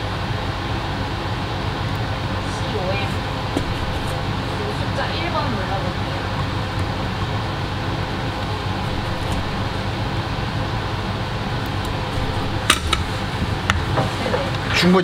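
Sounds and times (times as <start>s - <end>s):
low hum: 0.0s - 14.9s
fans whirring: 0.0s - 15.0s.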